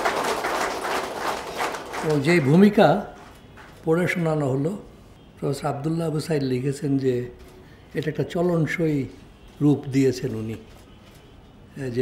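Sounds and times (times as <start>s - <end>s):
audience applause: 0.0s - 2.8s.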